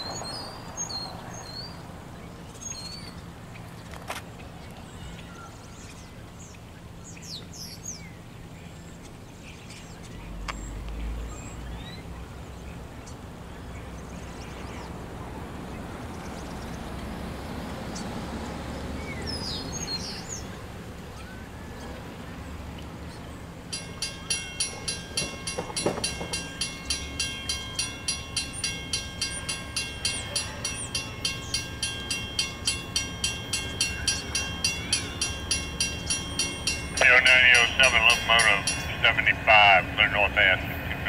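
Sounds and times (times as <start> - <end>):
railroad crossing bell ringing: 19.3 - 41.0
bird chirps: 23.1 - 39.1.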